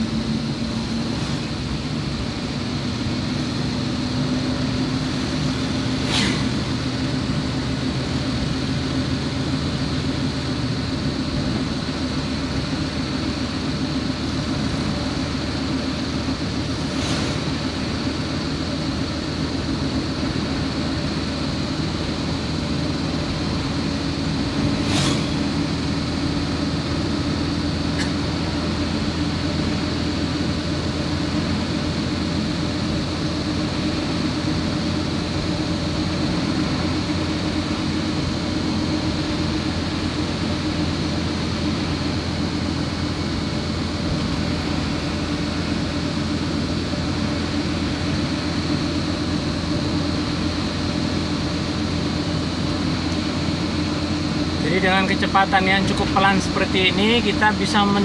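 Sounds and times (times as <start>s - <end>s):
car engine and tyre noise: 0.0s - 58.0s.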